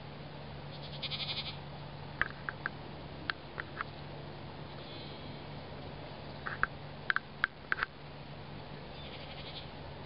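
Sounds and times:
goat bleating: 0.7 - 1.6, 9.0 - 9.7.

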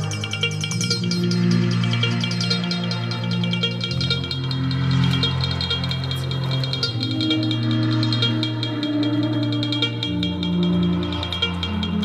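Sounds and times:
held low notes: 0.0 - 12.0
quick steady ticking pulse: 0.0 - 12.0.

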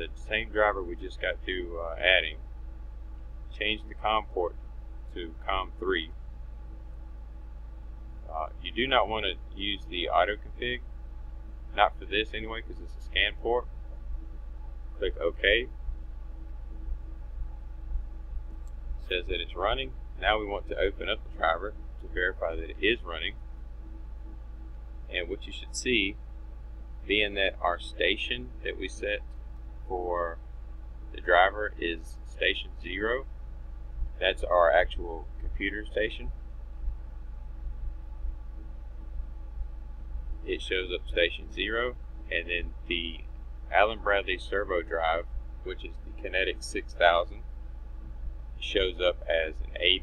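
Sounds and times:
low electrical hum: 0.0 - 50.0.

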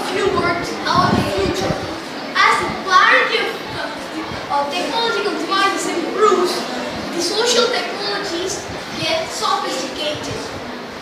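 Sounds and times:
boy speaking: 0.0 - 10.6.

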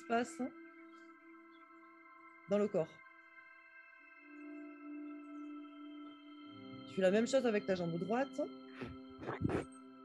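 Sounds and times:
ambient music of ringing tones: 0.0 - 10.0.

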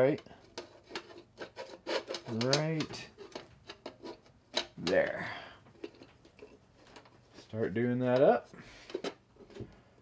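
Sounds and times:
faint metal scraping: 0.0 - 4.4.

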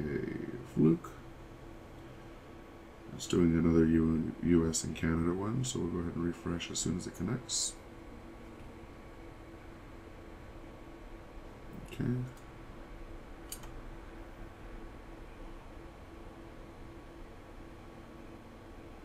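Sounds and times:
steady low hum: 0.0 - 19.0
computer mouse clicks: 13.5 - 13.8.

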